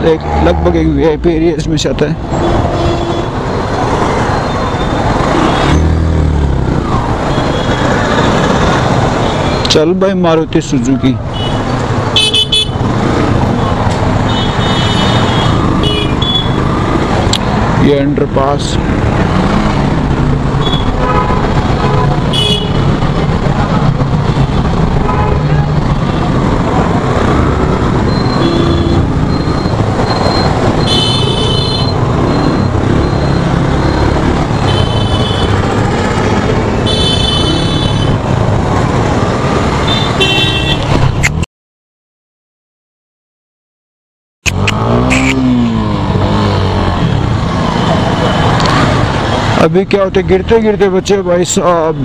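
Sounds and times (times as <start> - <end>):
traffic rumble: 0.0 - 41.4, 44.5 - 52.0
vehicle horns tooting: 2.4 - 3.4, 20.6 - 22.9, 28.2 - 29.2, 30.8 - 32.0, 34.6 - 35.6, 36.8 - 38.2, 39.9 - 40.9, 44.8 - 45.6
motorcycle engine: 44.5 - 49.6.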